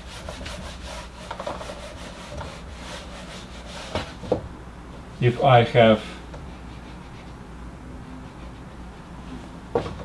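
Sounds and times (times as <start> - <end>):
eraser rubbing on whiteboard: 0.0 - 4.3.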